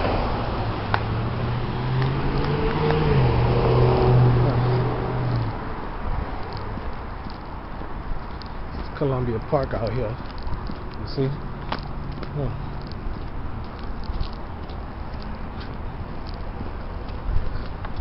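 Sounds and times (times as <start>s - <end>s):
vehicle passing on wet street: 0.0s - 7.1s.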